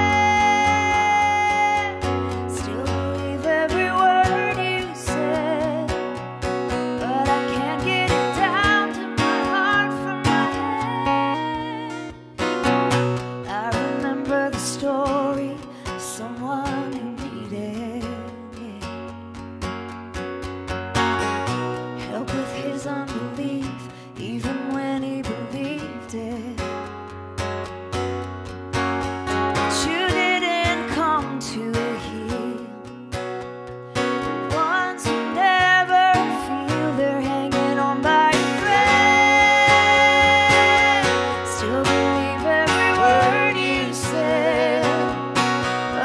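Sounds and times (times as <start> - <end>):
woman singing: 0.0 - 12.6, 13.2 - 19.4, 22.0 - 27.1, 29.4 - 33.2, 34.2 - 46.0
acoustic guitar strummed: 0.0 - 46.0.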